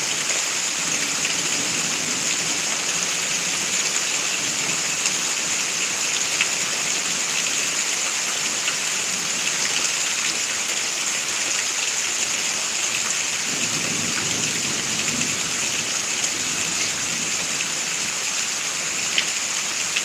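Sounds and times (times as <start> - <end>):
steady rain falling: 0.0 - 20.0.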